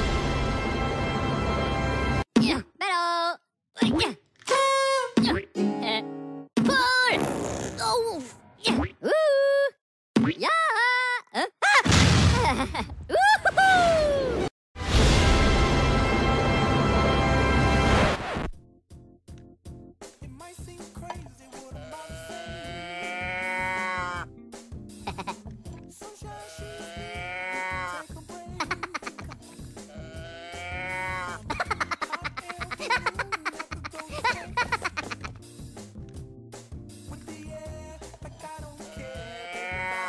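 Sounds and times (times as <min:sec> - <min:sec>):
high-pitched cartoon voice crying: 0:10.4 - 0:14.4, 0:26.6 - 0:29.6, 0:30.8 - 0:35.3
background music with steady beat: 0:18.6 - 0:40.0
cow moo toy: 0:21.8 - 0:24.2, 0:38.8 - 0:40.0.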